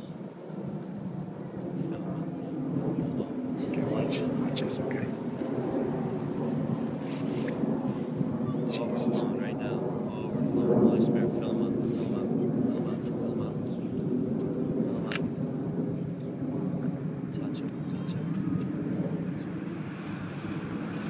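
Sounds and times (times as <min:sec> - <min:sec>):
low engine drone: 0:00.0 - 0:21.0.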